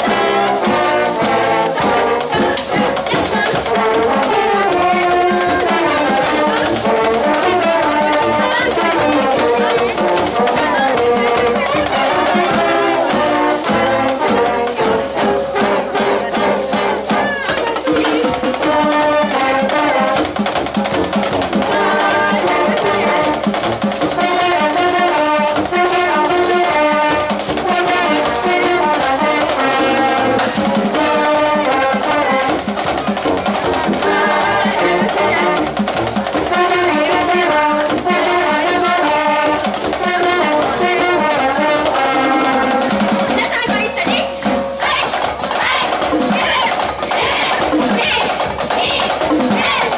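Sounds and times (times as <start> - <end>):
brass band playing upbeat tune: 0.0 - 49.9.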